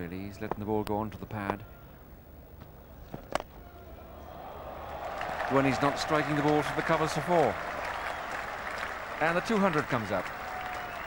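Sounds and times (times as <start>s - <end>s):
crowd applause: 4.4s - 11.0s.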